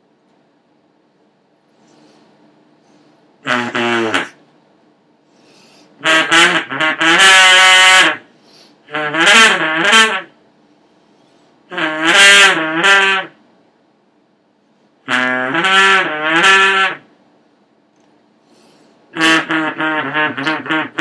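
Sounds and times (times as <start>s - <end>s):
hose horn buzzing brassy notes: 3.4s - 4.4s, 6.0s - 8.3s, 8.9s - 10.3s, 11.7s - 13.4s, 15.1s - 17.1s, 19.1s - 21.0s.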